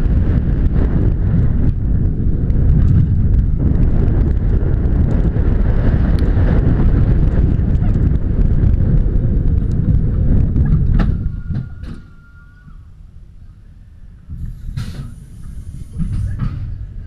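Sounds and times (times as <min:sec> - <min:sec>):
roller coaster rumbling on track: 0:00.0 - 0:17.0
steady whine: 0:00.0 - 0:17.0
brakes clacking: 0:14.2 - 0:17.0
brake hiss: 0:14.3 - 0:17.0.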